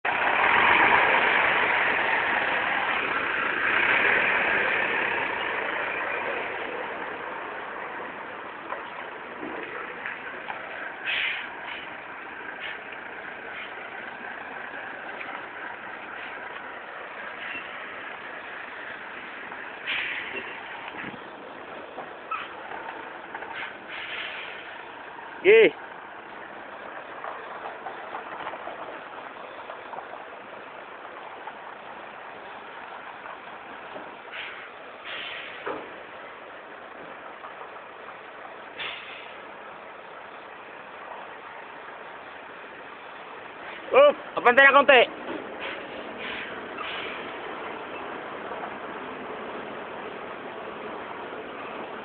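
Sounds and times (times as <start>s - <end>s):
truck engine idling: 0.0s - 52.0s
steady hiss: 23.5s - 24.9s, 34.2s - 36.3s, 38.7s - 41.0s.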